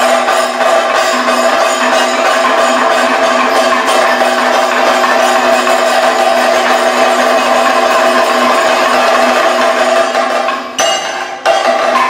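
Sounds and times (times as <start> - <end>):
drums in fast roll: 0.0 - 10.8.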